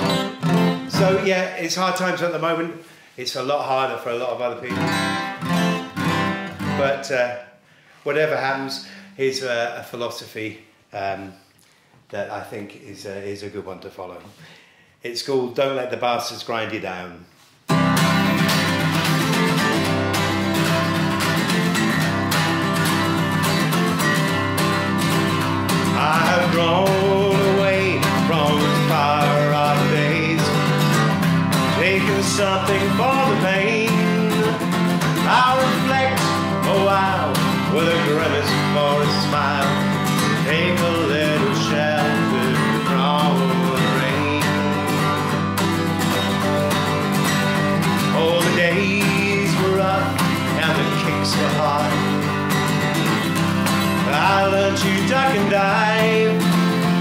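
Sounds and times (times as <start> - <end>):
acoustic guitar strumming: 0.0 - 3.1, 3.7 - 7.3, 17.7 - 57.0
man singing: 0.0 - 5.4, 6.6 - 10.0, 25.0 - 45.4, 47.8 - 52.5, 53.3 - 57.0.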